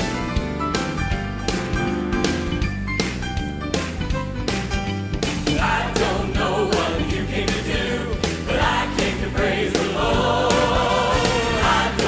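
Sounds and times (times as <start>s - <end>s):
band with drum beat: 0.0s - 12.0s
choir singing long held notes: 5.8s - 12.0s.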